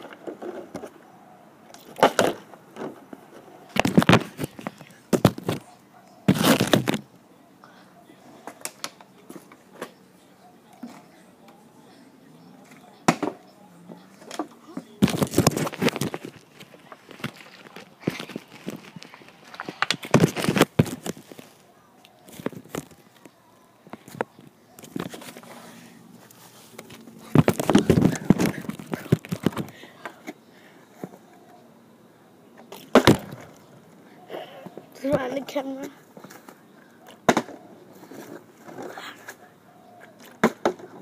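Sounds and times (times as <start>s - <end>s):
plastic bottle clattering on ground: 1.8s - 5.6s, 15.0s - 21.6s, 26.8s - 29.8s, 32.8s - 33.6s.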